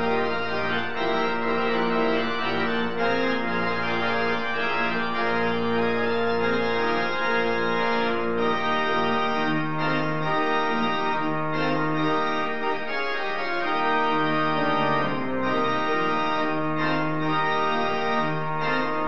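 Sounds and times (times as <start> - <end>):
pipe organ chords: 0.0 - 19.0.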